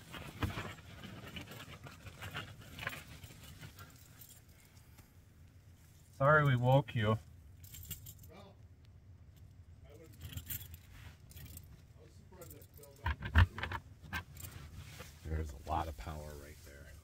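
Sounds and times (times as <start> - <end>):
keys jangling and clicking: 2.8 - 4.9, 7.6 - 8.3, 9.4 - 11.8, 12.4 - 13.1.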